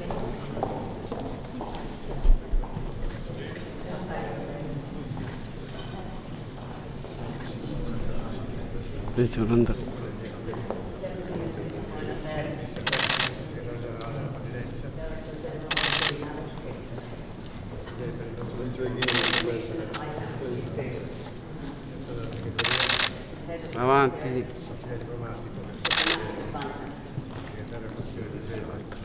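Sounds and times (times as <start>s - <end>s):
murmur of voices: 0.0s - 29.0s.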